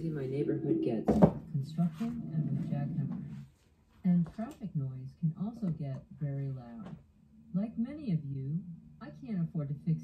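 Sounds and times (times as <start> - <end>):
muffled voices: 0.0 - 7.0.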